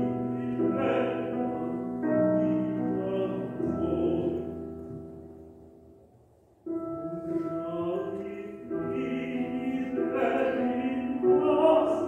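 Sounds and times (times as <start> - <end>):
classical voice and piano music: 0.0 - 12.0.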